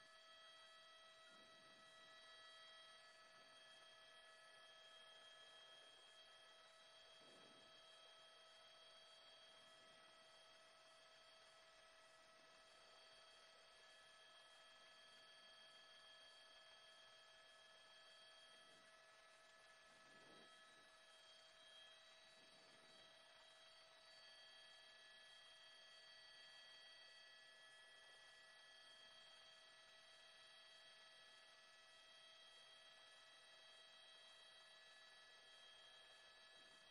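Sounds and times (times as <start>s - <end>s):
faint electronic hum: 0.0s - 36.9s.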